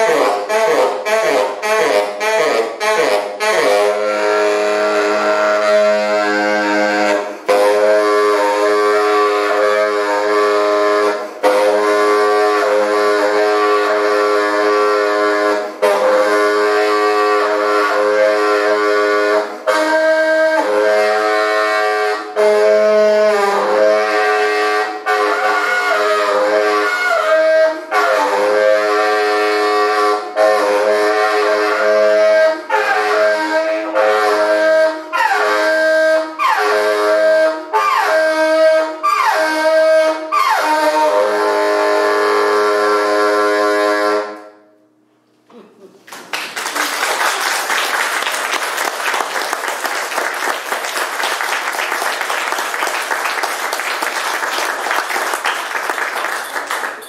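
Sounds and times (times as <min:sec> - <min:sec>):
tenor saxophone playing: 0:00.0 - 0:44.8, 0:47.0 - 0:57.0.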